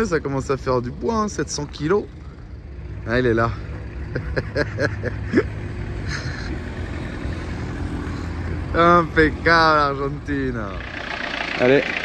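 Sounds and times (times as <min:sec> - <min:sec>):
vehicle engine rumble: 0:00.0 - 0:12.0
person laughing: 0:04.0 - 0:06.7.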